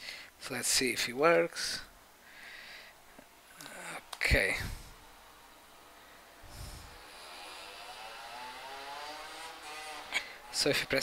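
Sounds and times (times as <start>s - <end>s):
computer fan whirring: 2.8s - 11.0s.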